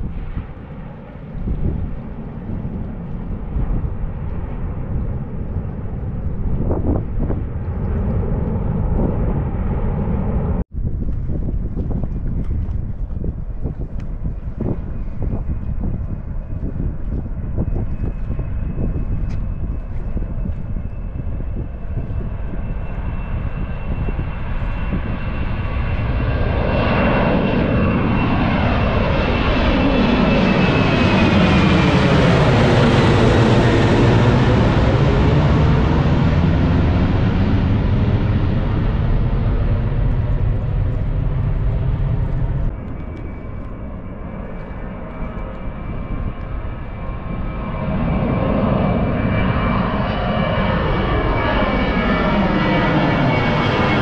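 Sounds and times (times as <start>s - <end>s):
airliner passing overhead: 0.0s - 54.0s
high jet engine whine: 0.0s - 54.0s.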